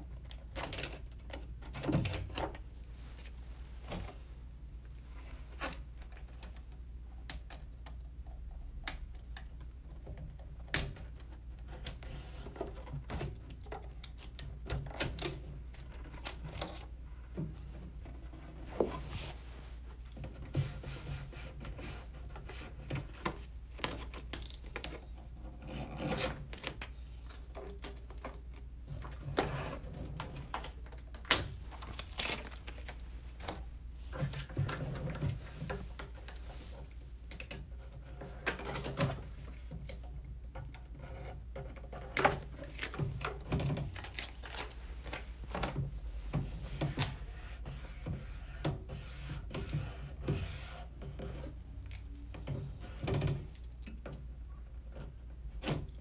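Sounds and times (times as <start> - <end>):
hands rubbing vinyl film: 17.9 - 25.2, 25.8 - 40.0, 40.6 - 52.2.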